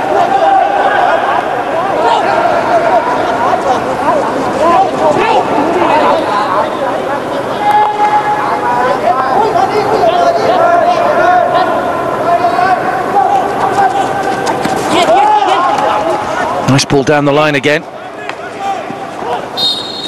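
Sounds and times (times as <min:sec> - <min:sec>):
crowd shouting and chanting: 0:00.0 - 0:20.0.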